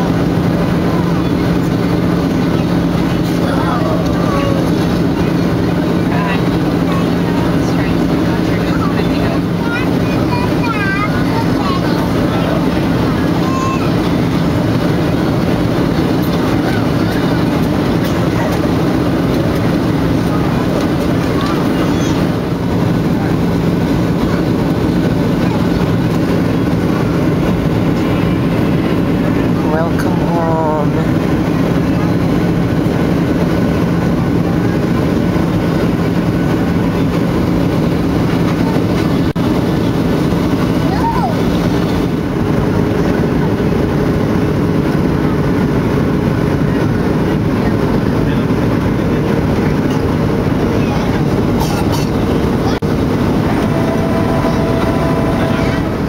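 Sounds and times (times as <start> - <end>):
airliner cabin roar: 0.0 - 56.0.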